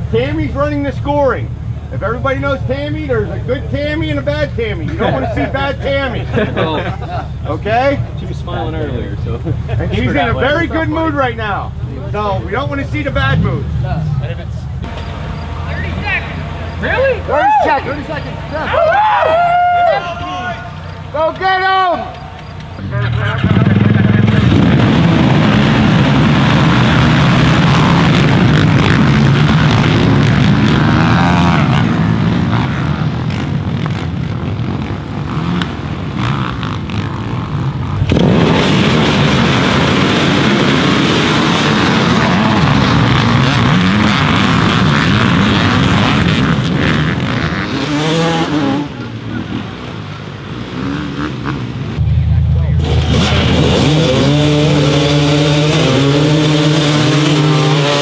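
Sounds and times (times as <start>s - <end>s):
dirt bike engines revving: 0.0s - 58.0s
engines passing and shifting gears: 0.0s - 58.0s.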